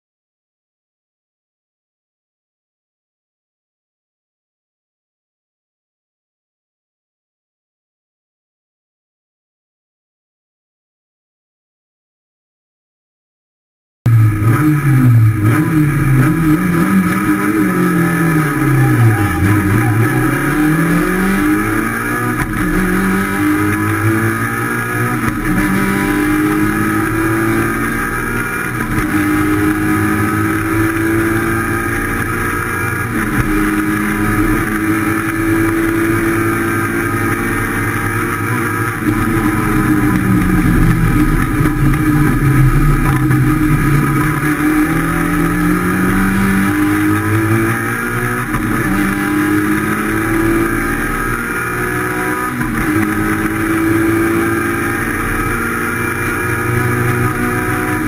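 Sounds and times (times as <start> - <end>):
rally car engine accelerating: 14.1 - 58.0.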